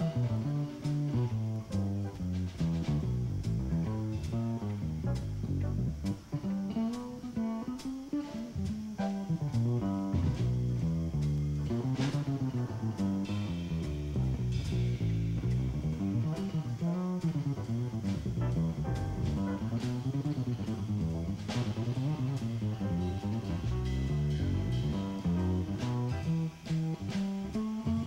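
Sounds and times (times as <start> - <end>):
plucked double bass: 0.0 - 28.0.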